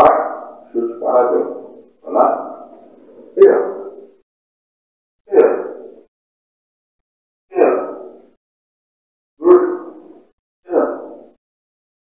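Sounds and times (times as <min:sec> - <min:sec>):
man shouting sharply: 0:05.3 - 0:06.0, 0:09.4 - 0:10.0.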